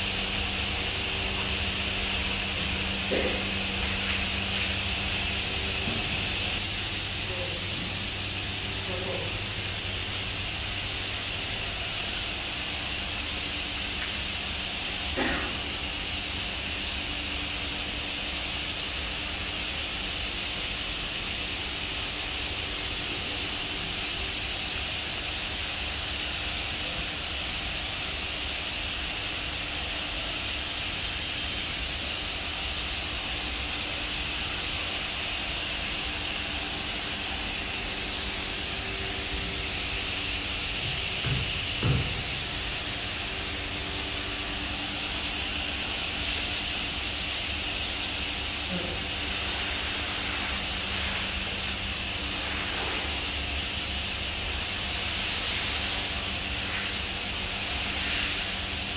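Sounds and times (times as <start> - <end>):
steady mechanical hum and hiss: 0.0 - 58.9.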